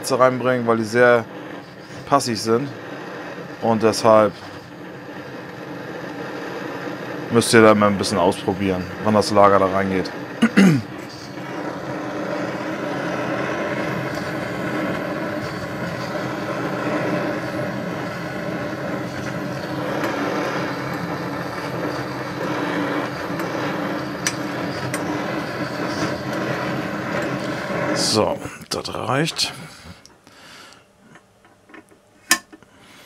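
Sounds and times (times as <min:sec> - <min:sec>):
blowtorch hissing flame: 0:00.0 - 0:30.8, 0:32.2 - 0:33.0.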